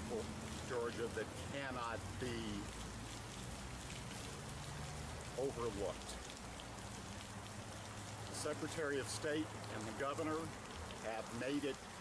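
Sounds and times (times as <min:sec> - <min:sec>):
man speaking: 0:00.0 - 0:02.7, 0:08.3 - 0:11.8.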